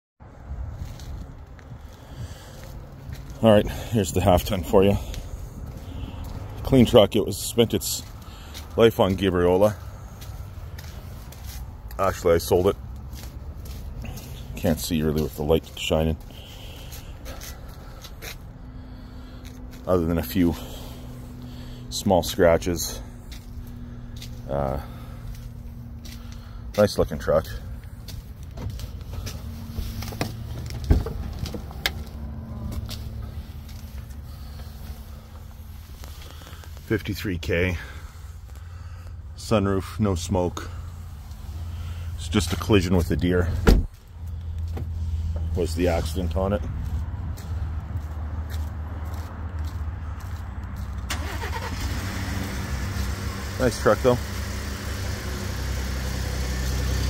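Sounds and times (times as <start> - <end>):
vehicle engine idling: 0.2 - 57.0
low steady rumble: 9.7 - 48.1
car door unlatching and opening: 30.0 - 31.9, 43.6 - 44.0.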